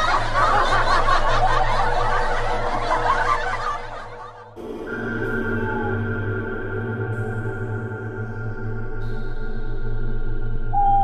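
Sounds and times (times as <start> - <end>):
people laughing and snickering: 0.0 - 4.6
background music: 0.0 - 11.0
eerie ambient music: 0.0 - 11.0.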